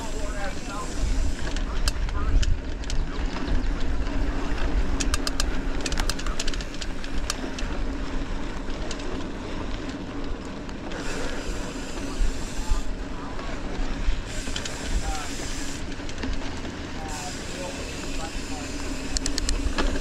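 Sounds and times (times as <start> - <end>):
wind rumble on microphone: 0.0 - 17.1
bike clicks and rattles: 0.0 - 20.0
tyre noise on dirt trail: 0.0 - 20.0.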